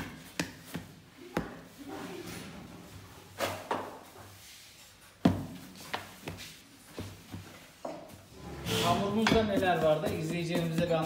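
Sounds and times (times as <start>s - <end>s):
dough slapping on wooden table: 0.0s - 1.8s, 5.2s - 7.5s, 9.1s - 11.0s.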